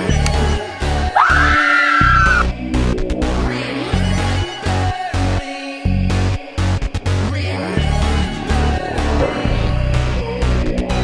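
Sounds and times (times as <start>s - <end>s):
high scream: 1.1s - 2.5s.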